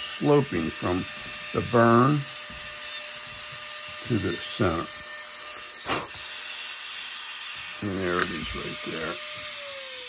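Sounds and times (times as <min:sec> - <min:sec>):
rotary tool grinding wood: 0:00.0 - 0:10.0.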